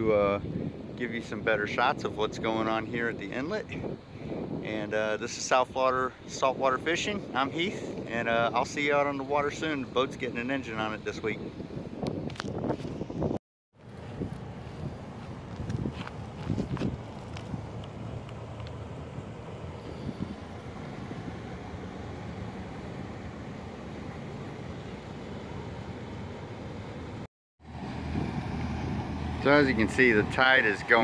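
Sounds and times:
wind noise on microphone: 0.0 - 21.4, 27.8 - 31.0.

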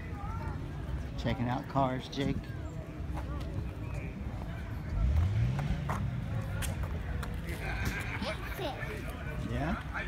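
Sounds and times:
people's voices: 0.0 - 10.0
car engine revving: 4.9 - 6.5.

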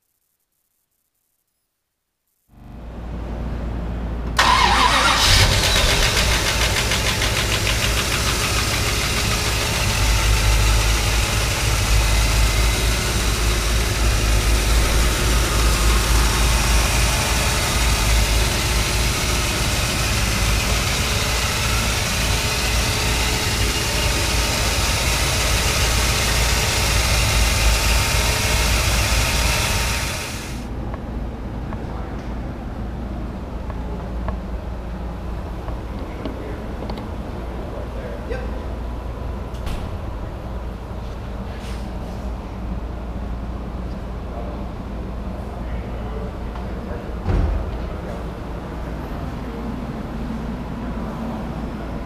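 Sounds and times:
car engine cranking: 4.4 - 30.6
car engine idling: 4.4 - 30.8.

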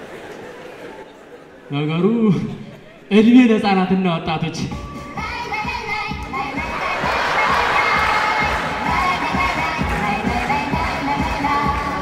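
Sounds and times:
music with a steady beat: 4.6 - 12.0
audience cheering and shouting: 6.4 - 12.0.

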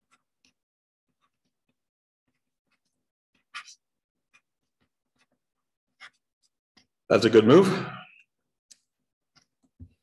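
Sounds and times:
stylus scratching on tablet screen: 0.0 - 7.0.

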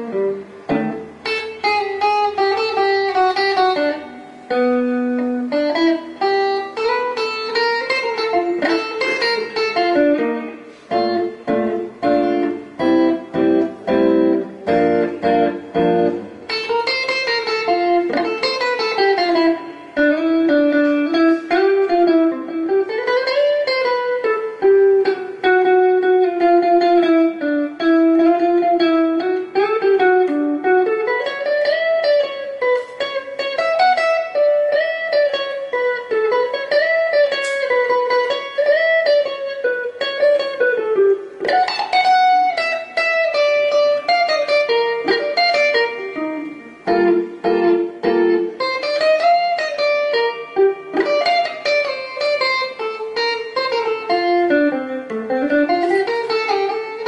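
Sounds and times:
electric guitar lead melody: 0.0 - 57.0.

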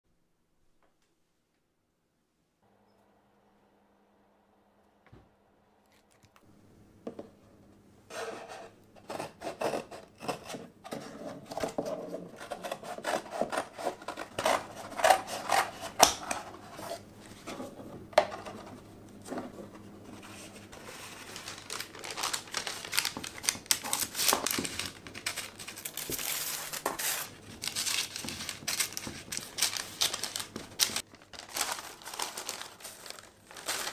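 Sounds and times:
scissors snipping paper: 9.0 - 16.6, 21.0 - 33.9
scissors cutting carton: 9.0 - 17.0.

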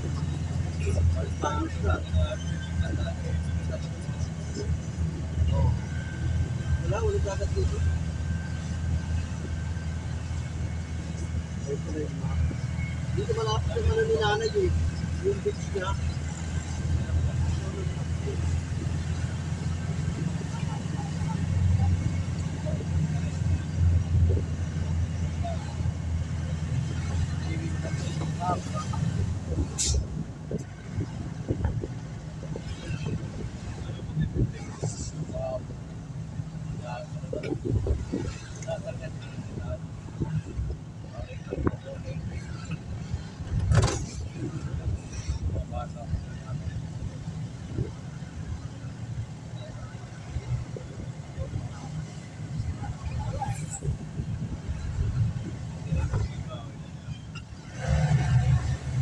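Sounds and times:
van engine and road noise: 0.0 - 59.0.

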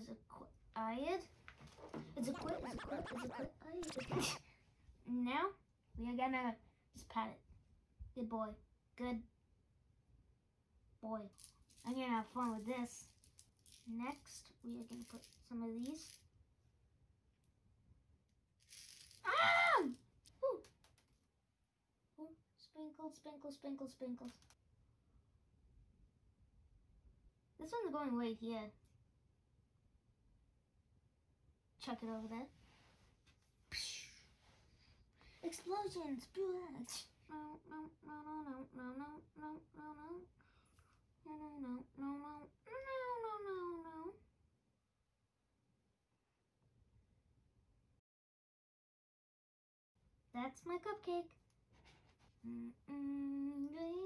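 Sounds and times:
soft rustle: 32.2 - 33.6.

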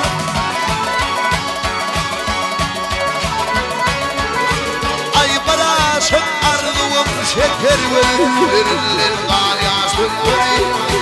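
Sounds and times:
live band instrumental music: 7.5 - 9.6
reedy accordion-like melody: 7.5 - 9.8.

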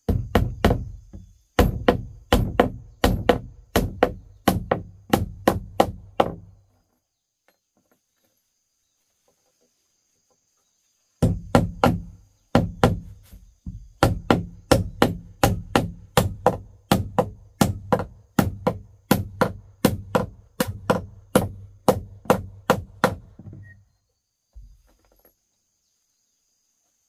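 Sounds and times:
hammer striking wooden floor: 0.0 - 6.5, 11.2 - 23.7.

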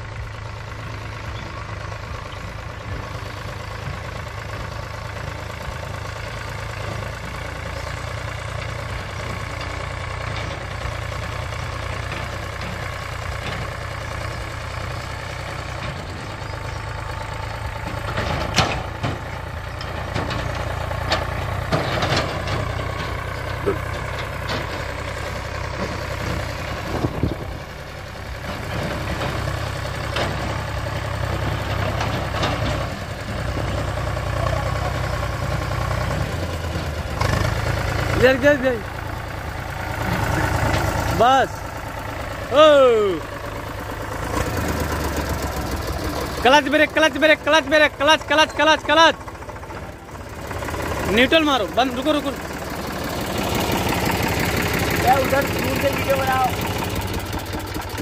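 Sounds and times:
diesel tractor engine running: 0.0 - 58.0.

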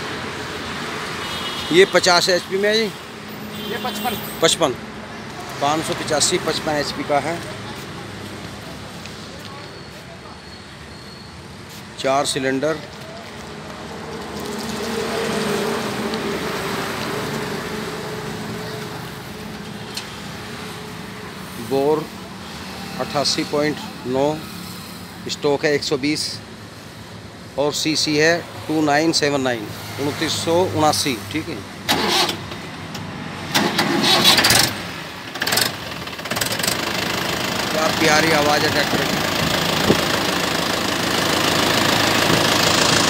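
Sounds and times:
tractor diesel engine running: 31.9 - 32.4, 33.5 - 43.0.

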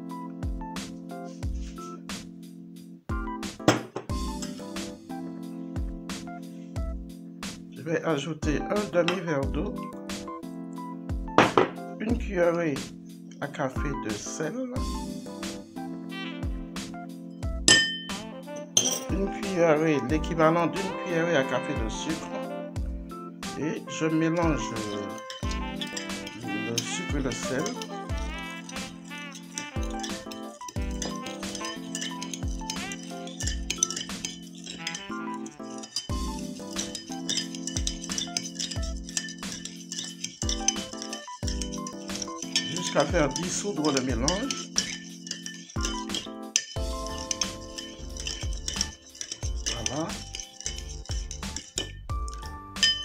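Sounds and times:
background music with beat: 0.0 - 7.9, 8.6 - 13.3, 14.8 - 19.4, 20.2 - 53.0
spoon clinking on porcelain bowl: 3.7 - 4.7, 17.7 - 19.2, 24.4 - 53.0.

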